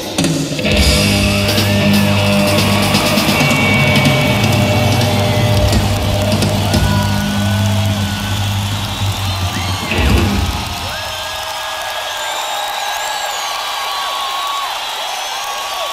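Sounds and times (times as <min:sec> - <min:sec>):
rock band playing: 0:00.4 - 0:11.6
crowd cheering and whistling: 0:00.6 - 0:15.9.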